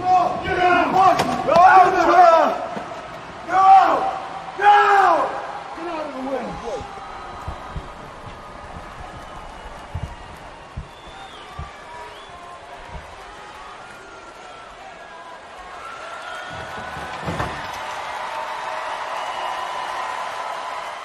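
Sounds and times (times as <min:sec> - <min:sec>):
footsteps: 0:06.5 - 0:14.0
cart crashing onto concrete: 0:16.4 - 0:18.0.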